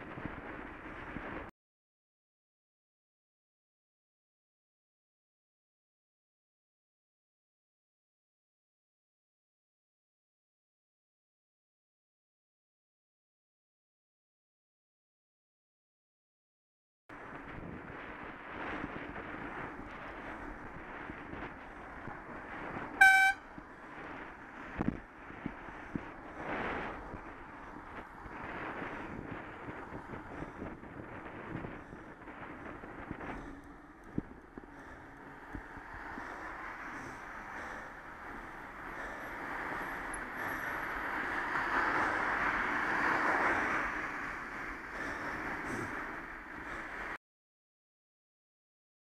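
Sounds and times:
road and wind noise: 0.0s - 1.5s, 17.1s - 47.2s
car horn toot: 23.0s - 23.4s.

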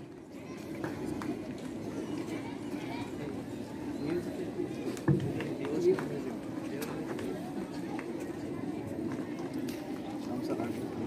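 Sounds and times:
faint background chatter: 0.0s - 11.0s.

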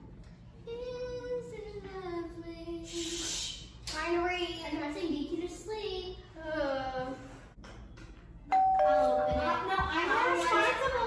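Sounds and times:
two-tone doorbell chime: 8.5s - 9.7s.

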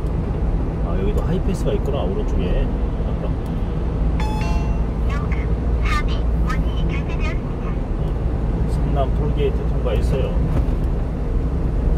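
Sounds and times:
truck road and engine rumble: 0.0s - 11.9s
short electronic beep: 4.2s - 5.1s.

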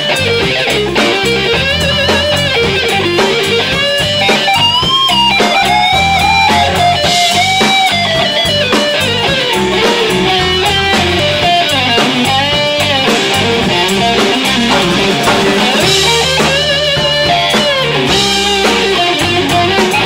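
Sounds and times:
electric guitar bent notes: 0.0s - 18.9s
live rock band playing: 0.0s - 20.0s.

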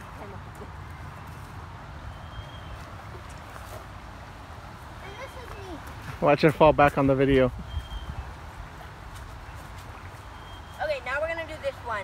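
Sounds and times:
faint high whistle: 7.7s - 8.1s.

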